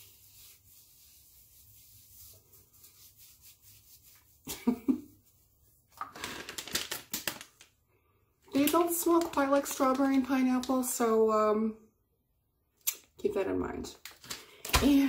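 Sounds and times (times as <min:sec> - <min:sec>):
plastic wipes pack rustling: 0:05.9 - 0:07.7, 0:08.5 - 0:10.9, 0:14.0 - 0:15.0.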